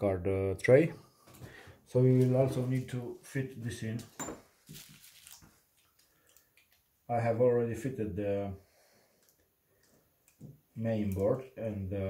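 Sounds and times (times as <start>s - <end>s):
soft rustles of bubble wrap: 2.0s - 7.0s.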